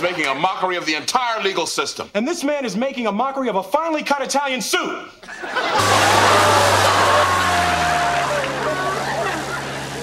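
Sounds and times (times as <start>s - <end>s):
light aircraft engine and propeller drone: 6.6s - 10.0s.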